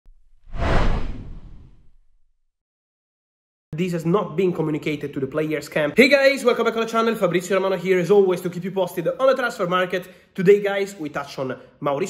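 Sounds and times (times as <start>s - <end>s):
whoosh with deep rumble: 0.1s - 2.2s.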